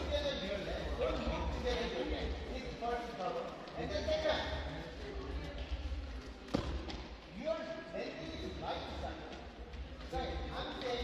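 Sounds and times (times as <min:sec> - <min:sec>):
men talking in echoing hall: 0:00.0 - 0:11.0.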